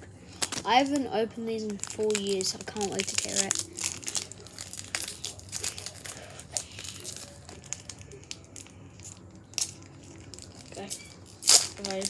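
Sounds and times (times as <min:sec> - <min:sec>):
foil wrapper crinkling: 0:00.3 - 0:12.0.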